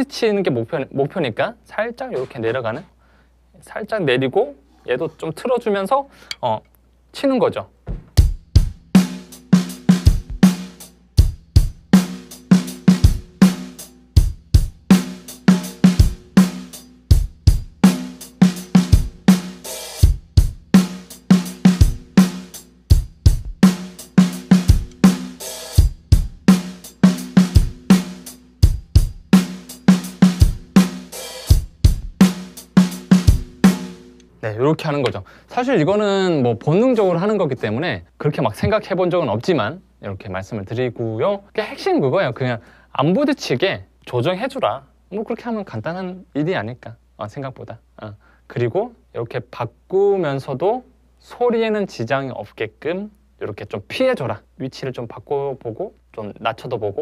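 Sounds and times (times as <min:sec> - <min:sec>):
bass drum kicks: 0:07.9 - 0:08.9, 0:22.9 - 0:23.7, 0:25.8 - 0:26.5
hi-hat strokes: 0:08.4 - 0:34.3.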